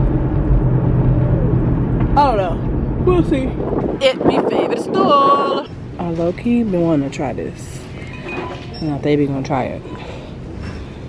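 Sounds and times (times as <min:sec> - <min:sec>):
car engine hum: 0:00.0 - 0:08.1
road noise: 0:00.0 - 0:11.0.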